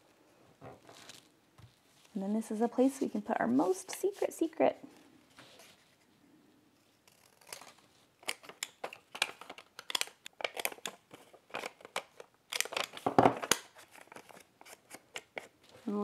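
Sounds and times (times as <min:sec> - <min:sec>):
scissors snipping paper: 0:07.0 - 0:15.5.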